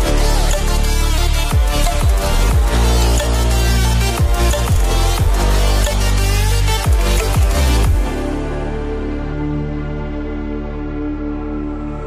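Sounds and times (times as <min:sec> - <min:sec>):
electronic music with heavy bass: 0:00.0 - 0:12.0.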